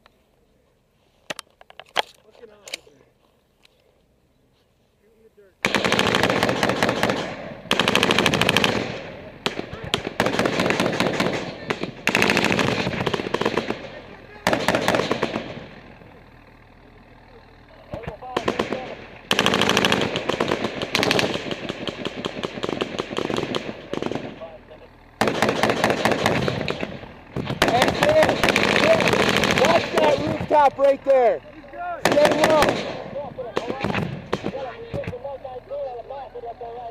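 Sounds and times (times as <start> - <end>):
automatic gunfire bursts: 5.6 - 16.0, 18.0 - 30.8, 32.0 - 35.1.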